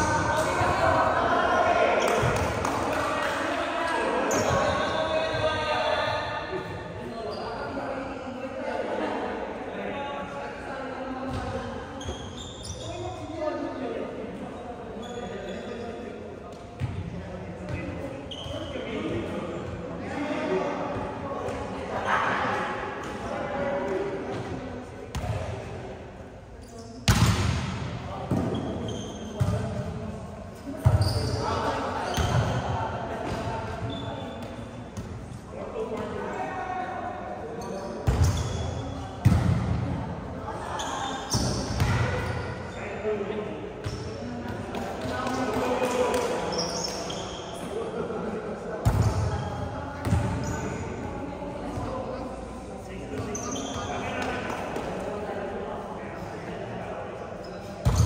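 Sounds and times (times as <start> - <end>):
volleyball slaps in a gym: 0.0 - 9.0, 11.0 - 14.5, 15.6 - 56.7, 57.4 - 58.0.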